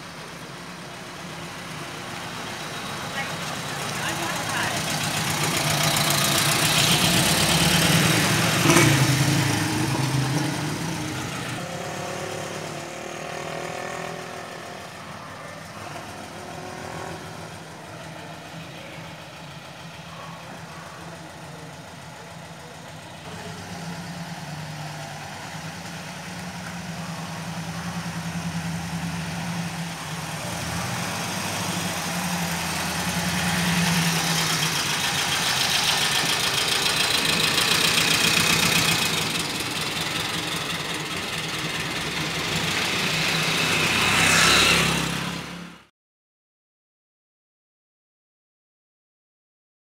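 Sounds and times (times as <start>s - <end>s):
old car engine running: 0.0s - 12.6s, 14.5s - 45.2s.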